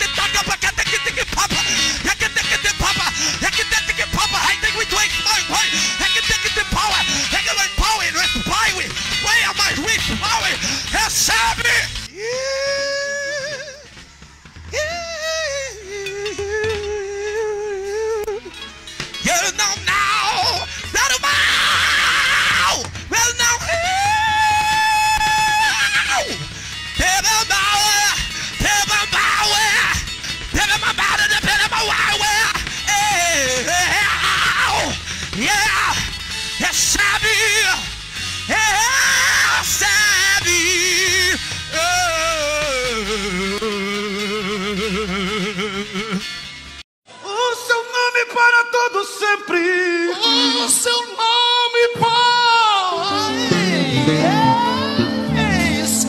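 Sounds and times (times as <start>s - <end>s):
band backing: 0.0s - 46.8s, 51.8s - 56.0s
man singing long note: 52.0s - 56.0s.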